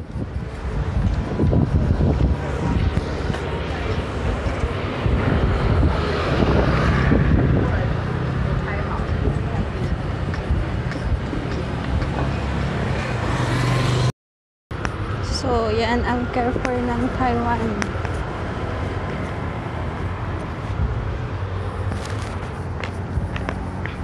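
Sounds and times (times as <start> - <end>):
passing cars and scooters: 0.0 - 14.1, 14.8 - 24.0.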